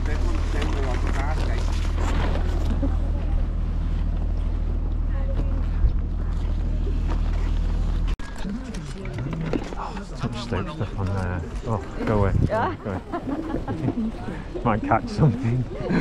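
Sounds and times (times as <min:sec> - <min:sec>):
steady low rumble: 0:00.0 - 0:16.0.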